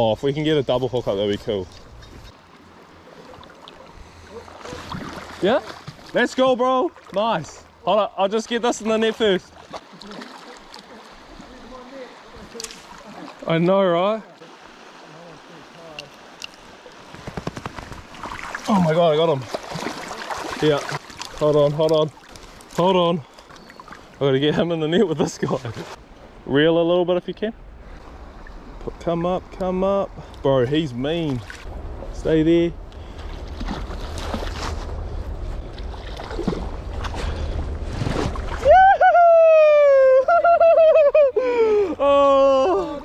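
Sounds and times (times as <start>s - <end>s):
water splashes: 0.0s - 26.1s, 27.8s - 39.8s
river current flowing: 0.0s - 43.0s
fish splashing at the surface: 9.6s - 11.5s, 17.1s - 18.8s, 19.4s - 21.5s
wind rumble on microphone: 27.6s - 39.1s.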